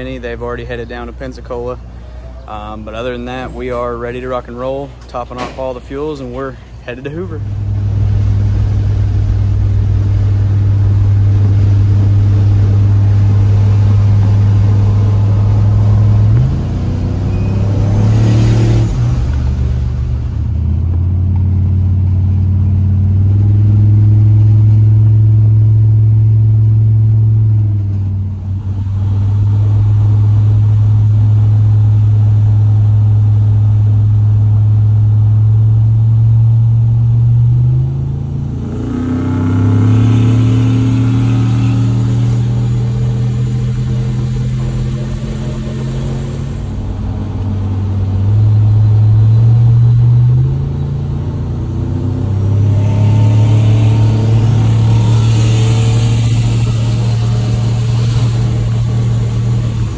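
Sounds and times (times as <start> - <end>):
pickup engine droning: 0.0 - 59.9.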